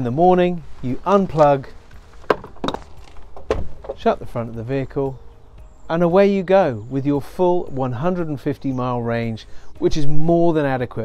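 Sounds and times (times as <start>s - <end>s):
charge port flap thump: 2.3s - 4.1s.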